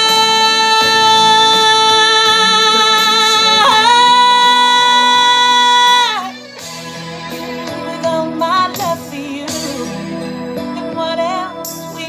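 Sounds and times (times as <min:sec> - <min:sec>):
woman belting a held note: 0:00.0 - 0:06.3
karaoke backing track: 0:00.0 - 0:12.0.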